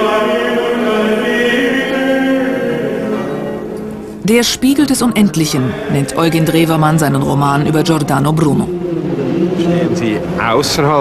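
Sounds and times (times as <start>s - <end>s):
voices singing a chant: 0.0s - 3.7s, 4.3s - 11.0s.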